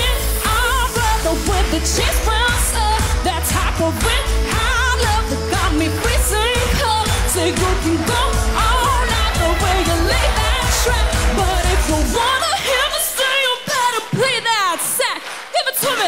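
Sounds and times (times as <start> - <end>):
backing track with heavy bass beat: 0.0 - 15.1
woman singing pop song: 0.0 - 16.0.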